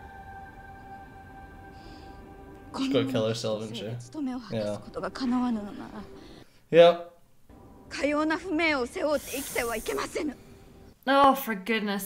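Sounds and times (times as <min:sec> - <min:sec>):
hiss: 0:09.0 - 0:10.3.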